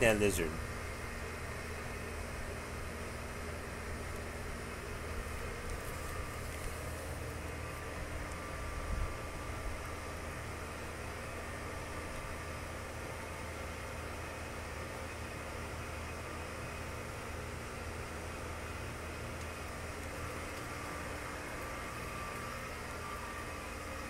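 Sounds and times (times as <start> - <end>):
mechanical hum and hiss: 0.0 - 24.0.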